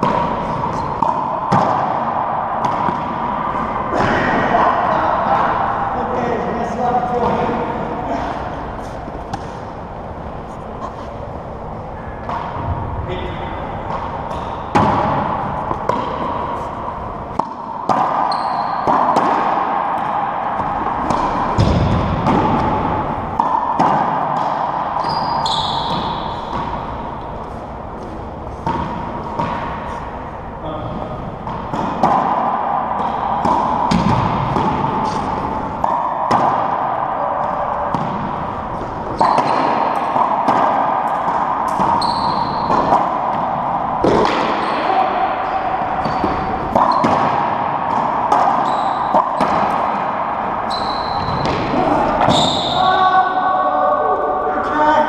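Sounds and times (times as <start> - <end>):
rubber ball smacking and echoing: 12.0 - 27.3, 30.9 - 52.8
sneaker squeaks on floor: 18.2 - 18.9, 25.0 - 26.6, 39.1 - 39.7, 41.9 - 42.9, 46.0 - 47.1, 48.6 - 49.4, 50.7 - 51.6, 52.3 - 52.9.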